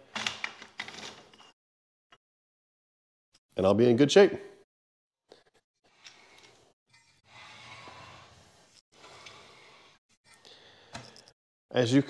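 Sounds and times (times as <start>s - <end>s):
metal parts sliding and knocking: 5.9s - 10.4s.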